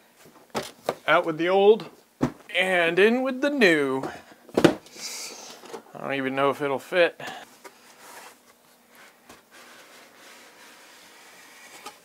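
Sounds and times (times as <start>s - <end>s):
cardboard rubbing on cardboard: 7.8s - 12.0s.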